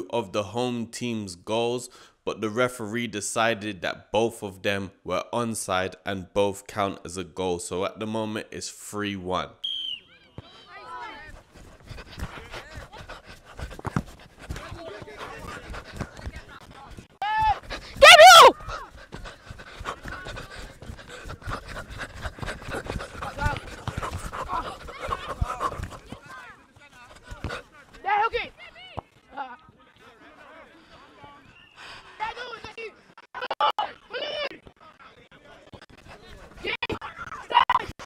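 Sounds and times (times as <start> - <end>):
players shouting: 17.2 - 19.0, 22.7 - 28.9.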